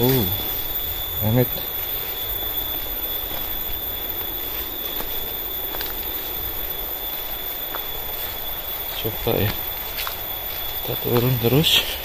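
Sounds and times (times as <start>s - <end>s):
footsteps on dry leaves: 0.0s - 12.0s
insect drone: 0.0s - 12.0s.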